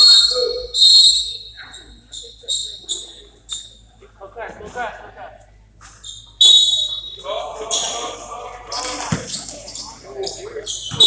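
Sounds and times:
referee's whistle blasts: 0.0s - 3.7s, 6.1s - 7.2s.

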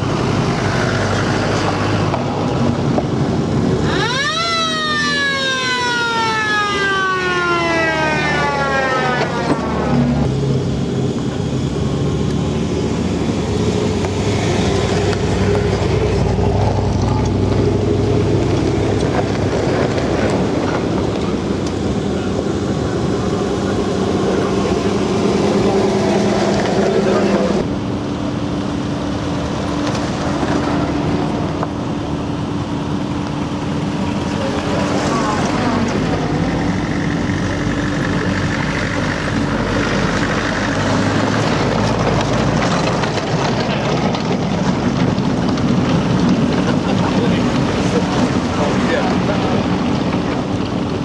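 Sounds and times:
vehicle engines driving past: 0.0s - 51.0s
tyre and wind noise: 12.3s - 51.0s.

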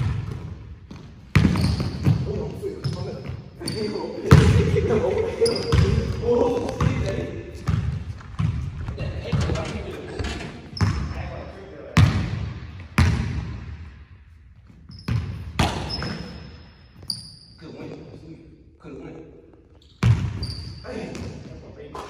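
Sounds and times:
basketball bouncing on hardwood floor: 0.0s - 2.4s, 7.6s - 9.6s, 12.0s - 13.5s
sneakers squeaking on floor: 0.0s - 13.6s, 14.4s - 18.3s, 19.4s - 22.0s.

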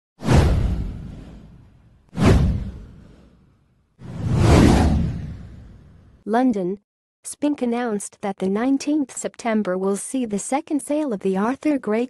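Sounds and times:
whoosh sound effects: 0.2s - 3.4s, 4.0s - 6.0s.

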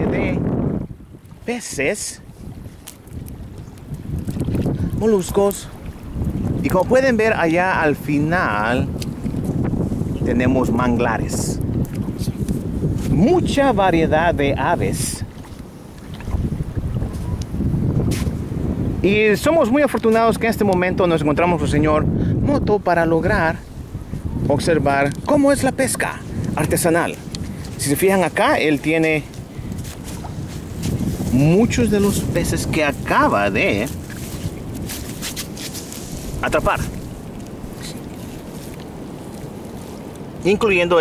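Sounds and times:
wavelets lapping at shore: 0.0s - 41.0s
wind buffeting microphone: 0.0s - 41.0s.

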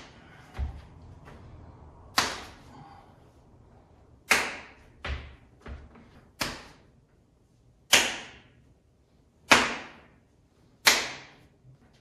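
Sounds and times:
sharp slapping strikes on body: 2.1s - 2.7s, 4.2s - 5.4s, 6.3s - 6.9s, 7.9s - 8.6s, 9.4s - 10.2s, 10.8s - 11.5s.

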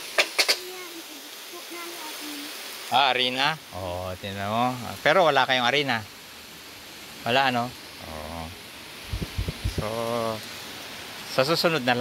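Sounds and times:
background hiss: 0.0s - 12.0s
low thumps: 9.1s - 9.9s.

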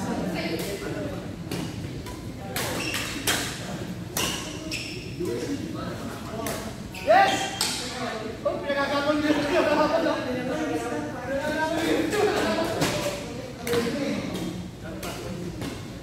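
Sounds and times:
rackets hitting shuttlecock: 1.5s - 4.7s, 7.4s - 7.9s.

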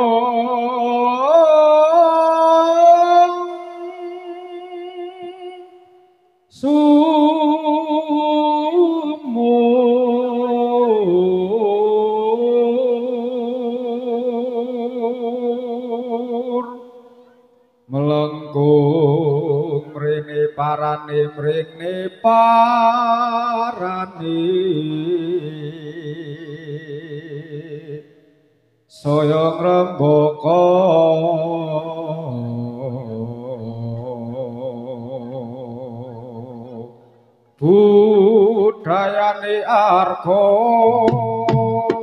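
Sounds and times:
chanting with long held notes: 0.0s - 42.0s.

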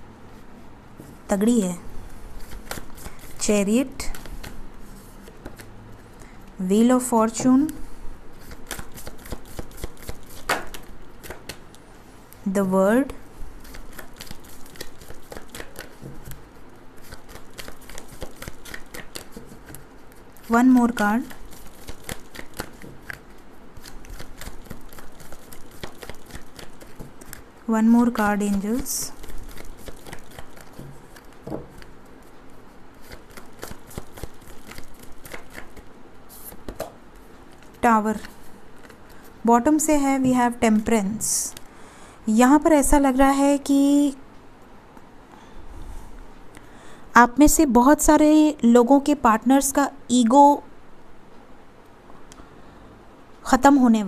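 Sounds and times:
cards rustling and clicking: 2.4s - 3.4s, 4.0s - 5.8s, 8.4s - 11.6s, 13.6s - 20.5s, 21.2s - 27.5s, 28.1s - 32.3s, 32.9s - 39.2s.

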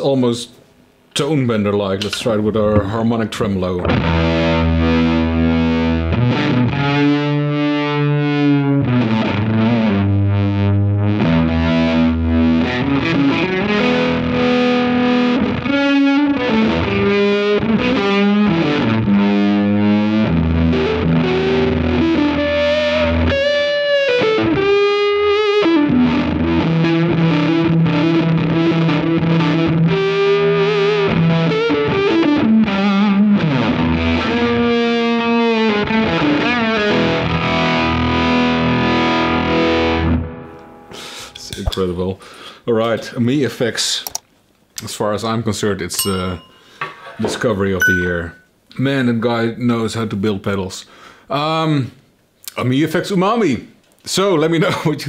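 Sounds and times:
electric guitar with fuzzy tremolo: 3.8s - 41.4s.

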